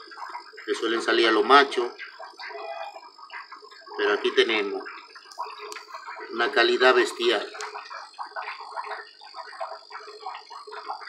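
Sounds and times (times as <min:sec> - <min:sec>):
small animals chirping: 0:00.0 - 0:11.0
steady high-pitched hum: 0:00.0 - 0:11.0.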